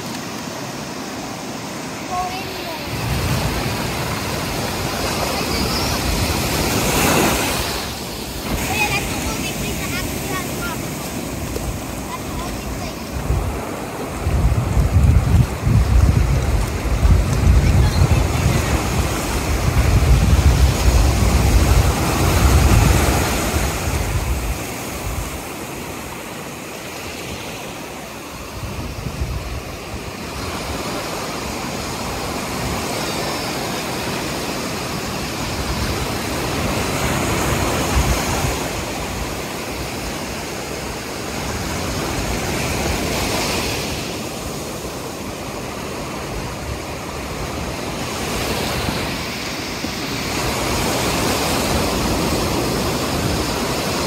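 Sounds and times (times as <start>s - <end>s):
ocean surf breaking on sand: 0.0s - 54.0s.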